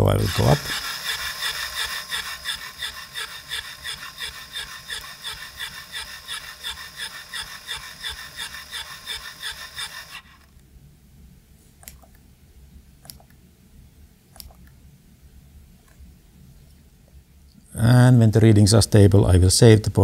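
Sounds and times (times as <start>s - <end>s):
electric pump pulsing: 0.0s - 10.5s.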